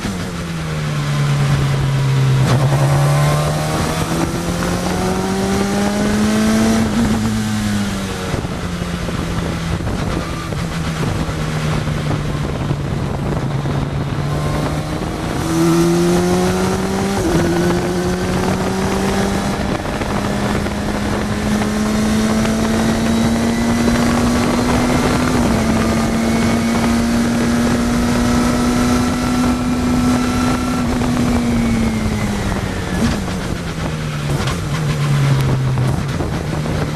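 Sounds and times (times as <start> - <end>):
race car engine: 0.0 - 36.9
wind buffeting microphone: 1.1 - 36.9.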